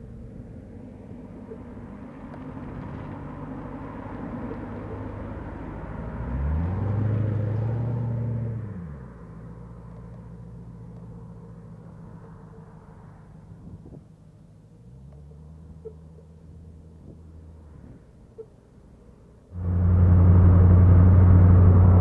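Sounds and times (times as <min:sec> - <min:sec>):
car engine revving by: 0:04.8 - 0:09.2, 0:19.5 - 0:22.0.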